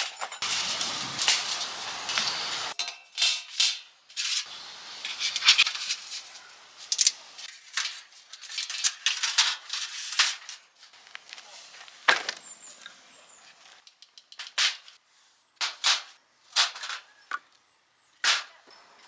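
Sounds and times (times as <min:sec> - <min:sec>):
metal rods clinking and clattering: 0:00.0 - 0:10.7
fire sheet handled: 0:03.2 - 0:12.5.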